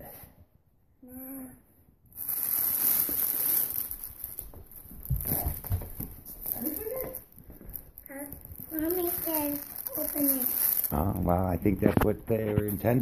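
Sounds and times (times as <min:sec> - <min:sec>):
cellophane crinkling and rustling: 0:02.9 - 0:13.0.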